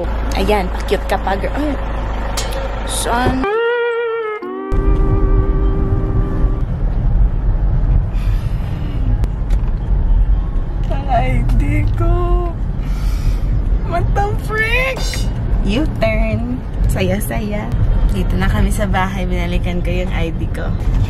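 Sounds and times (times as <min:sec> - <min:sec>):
car interior rumble while driving: 0:00.0 - 0:21.0
held musical tone: 0:02.3 - 0:06.9.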